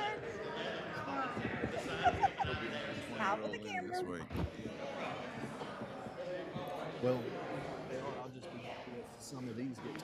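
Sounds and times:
indistinct conversation: 0.0s - 10.0s.

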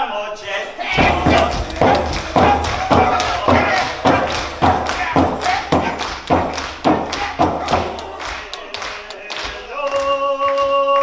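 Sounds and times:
voices calling: 0.4s - 9.3s
frame drum deep thuds: 0.9s - 8.4s.

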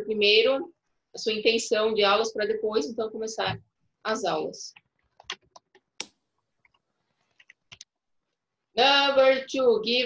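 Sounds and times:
computer keyboard keystrokes: 4.8s - 7.9s.

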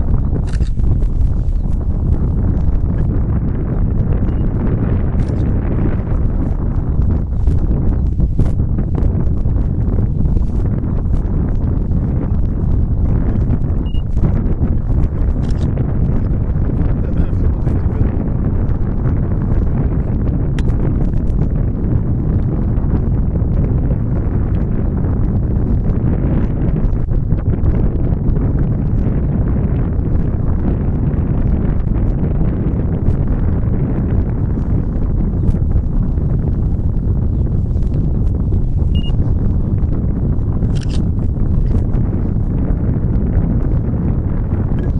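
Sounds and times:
wind buffeting microphone: 0.0s - 44.9s.

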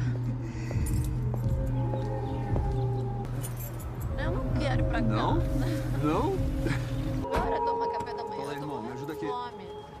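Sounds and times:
background music low notes: 0.0s - 10.0s.

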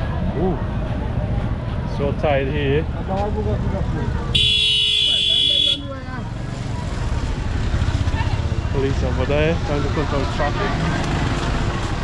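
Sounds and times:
rumble of slow traffic: 0.0s - 12.0s
vehicle horn blast: 4.4s - 5.8s.

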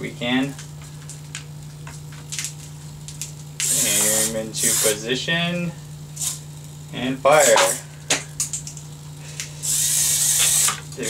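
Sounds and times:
steady low hum: 0.0s - 11.0s
hissing motor noise: 2.3s - 11.0s.

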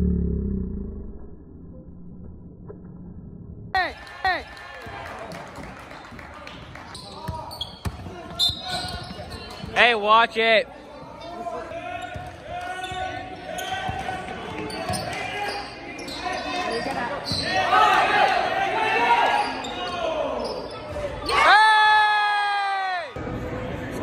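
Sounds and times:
crowd shouting and cheering: 3.8s - 7.5s, 8.1s - 23.4s.

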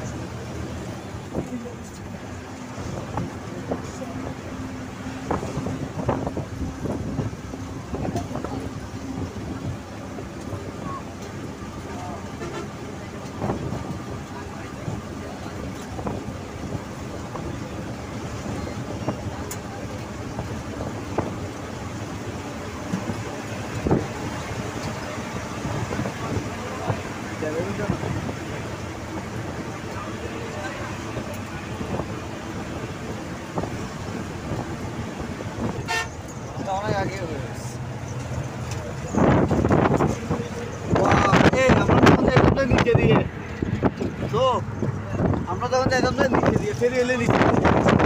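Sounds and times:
wind noise: 0.0s - 11.5s, 12.4s - 36.7s, 38.1s - 48.0s
road and engine rumble: 0.0s - 48.0s.

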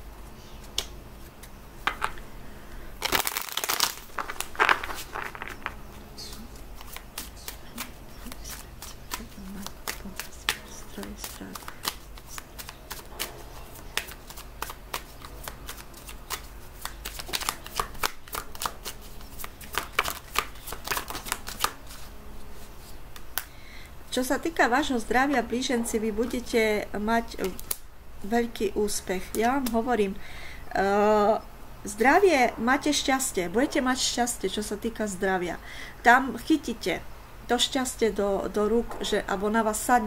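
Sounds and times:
cards being shuffled: 3.0s - 23.5s, 27.3s - 27.8s, 29.2s - 29.9s.

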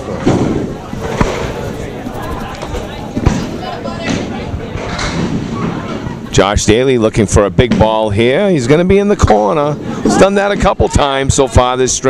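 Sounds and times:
crowd chatter: 0.0s - 6.8s.

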